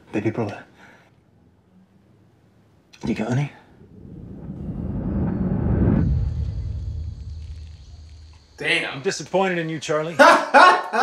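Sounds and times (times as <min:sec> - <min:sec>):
faint hiss: 0:03.0 - 0:10.2
low rumbling whoosh: 0:03.7 - 0:08.8.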